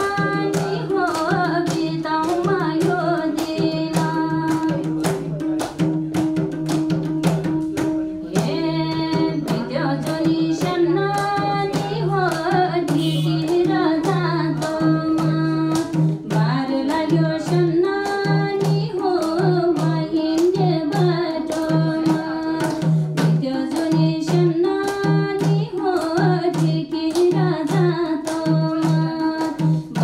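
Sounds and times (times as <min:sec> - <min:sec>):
woman singing folk song: 0:00.0 - 0:05.0, 0:08.3 - 0:30.0
hand drum played fast: 0:00.0 - 0:30.0.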